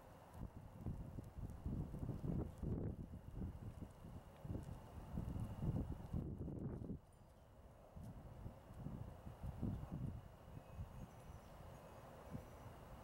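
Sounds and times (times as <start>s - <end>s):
faint high whine: 7.2s - 13.0s.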